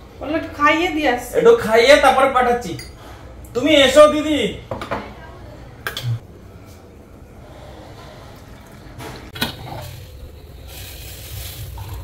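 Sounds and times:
water pouring into mugs: 8.2s - 12.0s.

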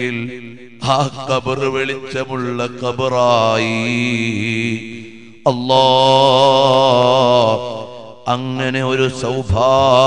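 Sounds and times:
man chanting: 0.0s - 10.0s.

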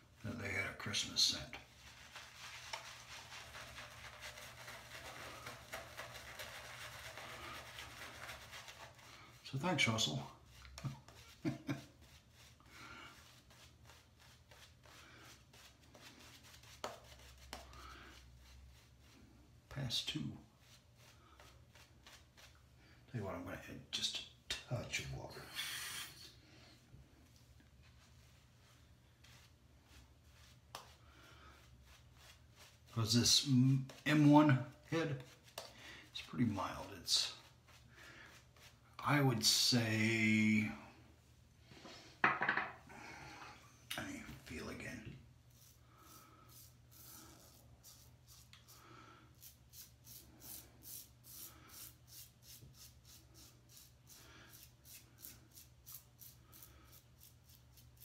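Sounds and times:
shaving brush rustling lather: 0.0s - 24.2s, 27.2s - 40.7s, 44.0s - 58.0s.

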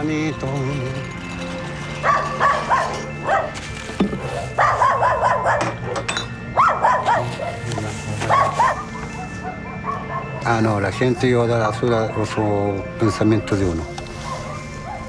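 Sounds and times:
background music with low notes: 0.0s - 15.0s
dog barking: 2.0s - 3.6s, 4.4s - 10.5s, 14.1s - 15.0s.

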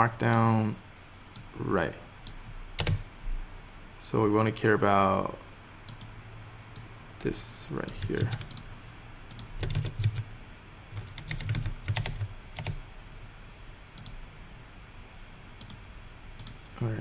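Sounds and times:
typing on computer keyboard: 2.8s - 3.0s, 7.8s - 8.7s, 9.3s - 10.2s, 10.9s - 12.8s.

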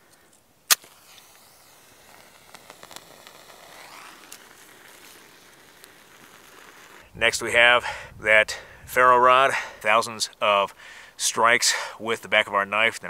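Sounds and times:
match flaring with hiss: 0.0s - 7.2s
match scraping on striker: 0.1s - 7.1s.

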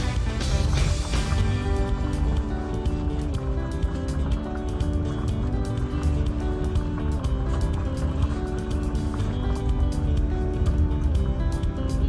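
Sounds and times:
background music with a beat: 0.0s - 12.0s.

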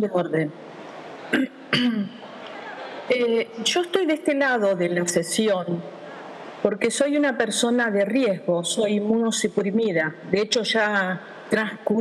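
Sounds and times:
faint background hiss: 0.0s - 12.0s
woman clearing her throat: 1.3s - 2.2s.

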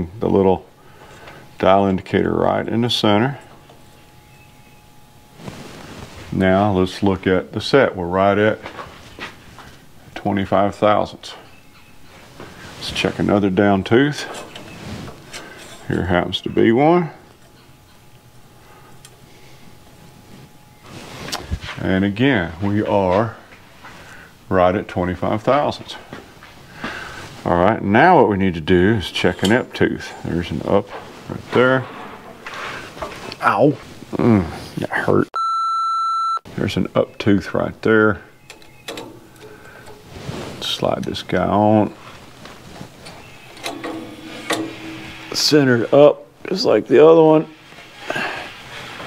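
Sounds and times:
steady background hum: 0.0s - 35.3s, 36.5s - 49.0s
faint clicks and scraping on metal: 14.2s - 16.0s, 38.5s - 41.4s, 42.0s - 45.9s.

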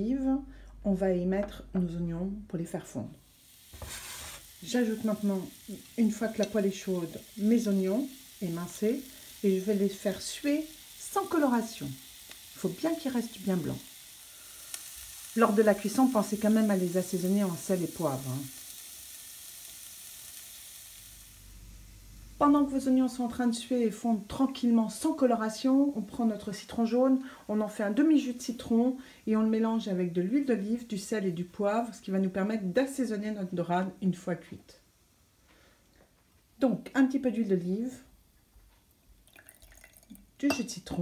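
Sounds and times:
onions sizzling in frying pan: 2.7s - 35.8s
liquid trickling into a glass: 39.2s - 40.3s.

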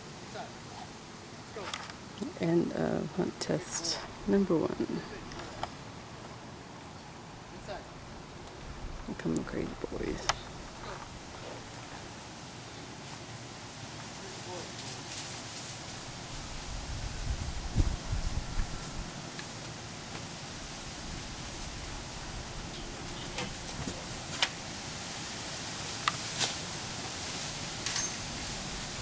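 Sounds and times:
sprinkler hissing: 3.6s - 29.0s.

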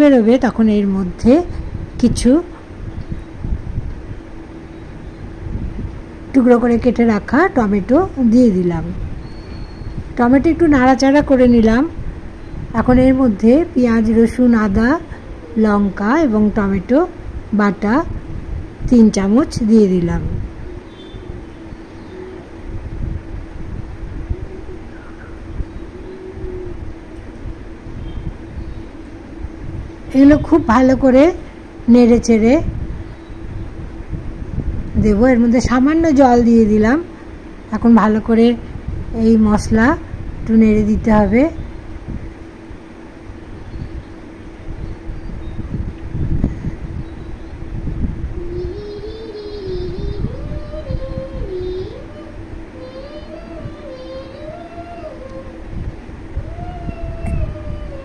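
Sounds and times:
gas stove hum: 0.0s - 58.0s
faint wavering tune: 19.2s - 33.8s.

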